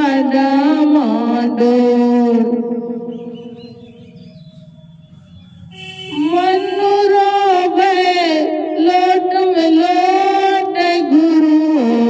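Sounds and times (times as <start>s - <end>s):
woman singing into microphone: 0.0s - 2.8s, 6.1s - 12.0s.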